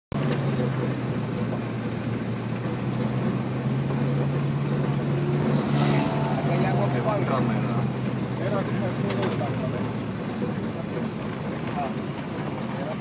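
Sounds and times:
travel noise: 0.1 - 13.0
vehicle engine humming: 0.1 - 13.0.

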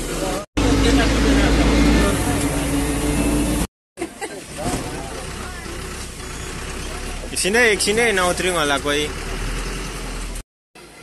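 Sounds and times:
passengers talking: 0.0 - 6.1
bus engine running: 0.0 - 11.0
road noise: 0.0 - 11.0.

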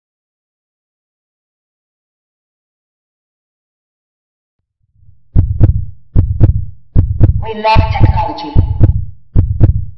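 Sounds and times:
faint low rumble: 4.8 - 9.9
heartbeat double thump: 5.0 - 9.9.

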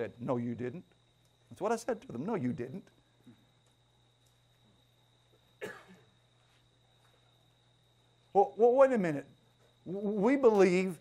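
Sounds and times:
faint steady hum: 0.0 - 11.0
person coughing: 5.6 - 6.1.

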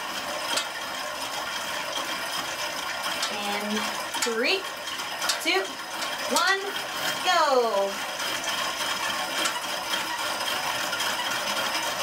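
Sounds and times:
exercise bike flywheel whirring: 0.0 - 12.0.

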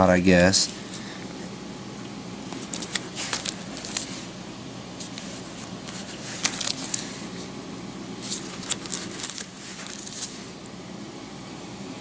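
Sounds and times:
steady low hum: 0.0 - 12.0
plastic wrap crinkling: 2.5 - 4.4, 5.0 - 7.4, 8.2 - 10.6.

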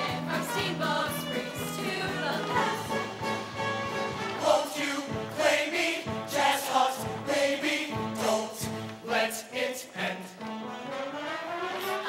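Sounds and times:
choir singing: 0.0 - 3.4, 4.0 - 12.0.

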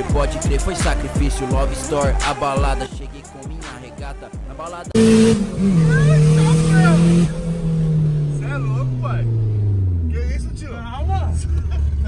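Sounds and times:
car engine revving down: 2.7 - 12.0.

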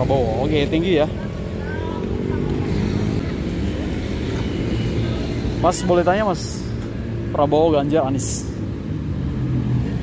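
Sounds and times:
scooter engines and traffic: 0.0 - 10.0.

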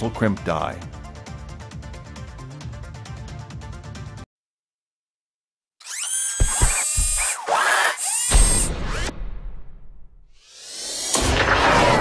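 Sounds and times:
background music: 0.0 - 4.3
drill-like whirring: 5.8 - 9.1, 10.4 - 11.2.

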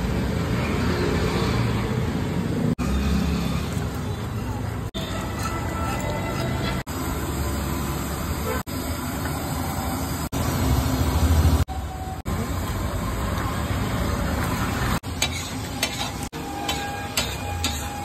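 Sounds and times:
masala bubbling and sizzling: 2.8 - 18.0
ladle stirring and scraping: 3.6 - 7.1, 15.0 - 18.0.

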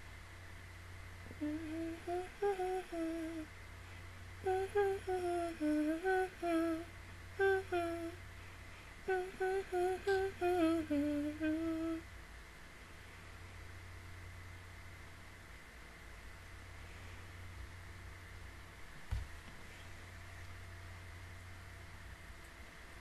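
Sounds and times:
woman humming a melody: 1.2 - 3.5, 4.4 - 8.2, 9.0 - 12.1.

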